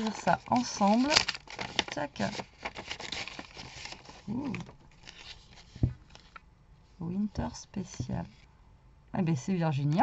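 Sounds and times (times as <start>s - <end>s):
paper and card rustling: 0.0s - 6.4s.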